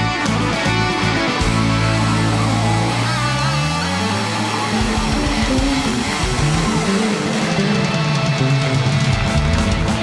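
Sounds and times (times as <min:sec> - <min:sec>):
bass guitar: 0:00.0 - 0:10.0
drums: 0:00.0 - 0:10.0
electric guitars: 0:00.0 - 0:10.0.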